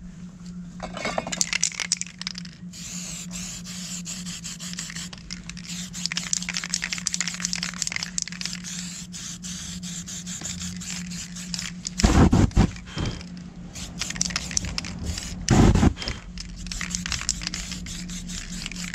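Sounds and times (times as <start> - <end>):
spray paint can hissing: 1.6 - 18.9.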